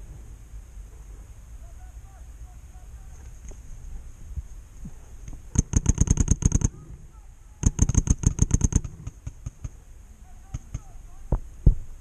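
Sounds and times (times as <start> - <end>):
paintball marker firing: 5.3 - 6.8, 7.6 - 9.8, 10.5 - 11.0.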